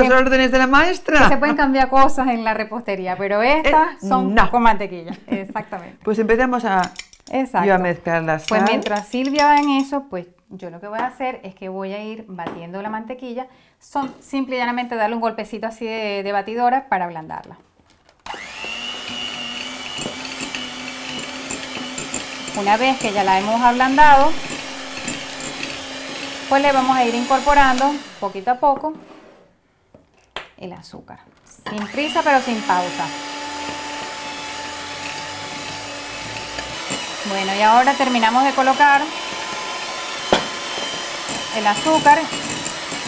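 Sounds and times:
electric hand mixer whining: 18.3 - 28.6, 31.7 - 43.0.

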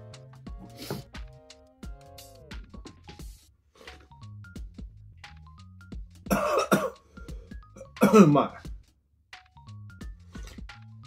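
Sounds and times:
light music with plinking notes: 9.4 - 11.0.

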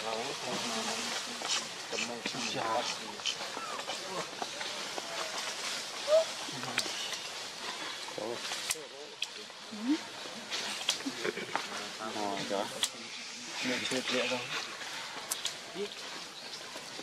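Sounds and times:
forest background noise: 0.0 - 17.0
sharp clicks: 15.3 - 15.6.

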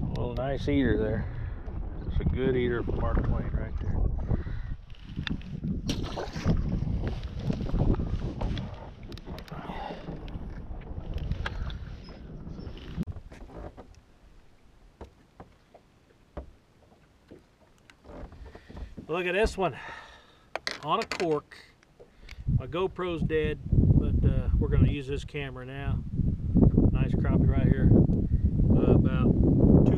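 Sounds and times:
wind rumbling on microphone: 0.0 - 14.0, 22.2 - 29.9.

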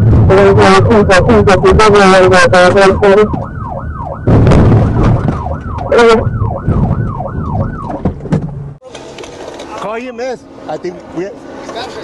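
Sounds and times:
car engine and road noise: 0.0 - 12.0
police siren yelping: 0.7 - 8.1.

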